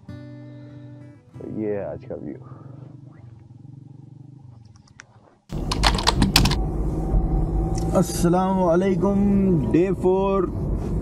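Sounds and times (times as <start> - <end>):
rapid sharp clicks: 5.5 - 6.6
steady low rumble: 5.5 - 11.0.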